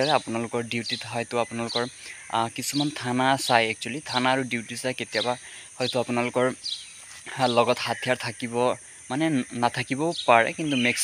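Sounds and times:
high-pitched insect drone: 0.0s - 11.0s
man speaking: 0.0s - 11.0s.

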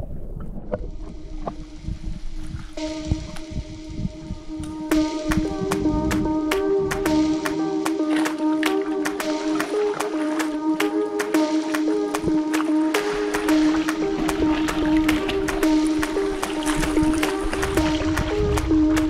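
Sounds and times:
background music with steady beat: 0.7s - 19.0s.

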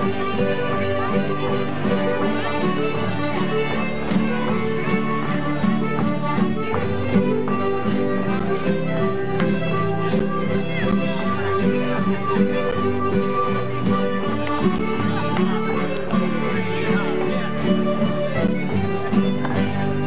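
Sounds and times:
folk dance music: 0.0s - 20.0s.

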